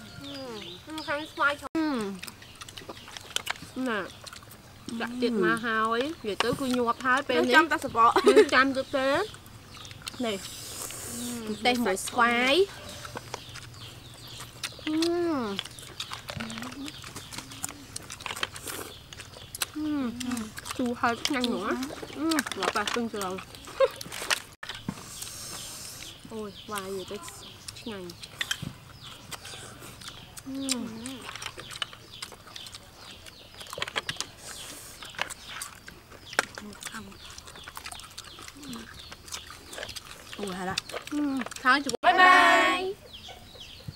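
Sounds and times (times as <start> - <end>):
clicks and smacks of eating snails: 0.6 - 42.0
sucking slurps: 10.2 - 11.9
person humming mm: 11.0 - 11.6.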